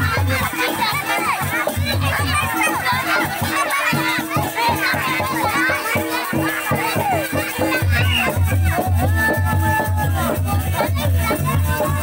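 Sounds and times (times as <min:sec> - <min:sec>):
crowd voices and children chatting: 0:00.0 - 0:12.0
folk dance drumbeat: 0:00.0 - 0:12.0.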